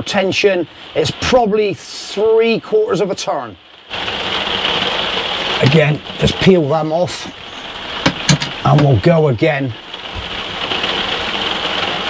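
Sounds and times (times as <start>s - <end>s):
heavy rain on roof: 0.0s - 12.0s.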